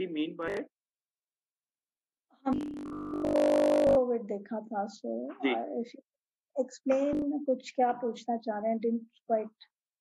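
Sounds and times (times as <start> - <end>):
person talking: 0.0 - 0.7, 3.9 - 6.0, 6.6 - 9.6
harsh buzzing tone: 2.5 - 4.0.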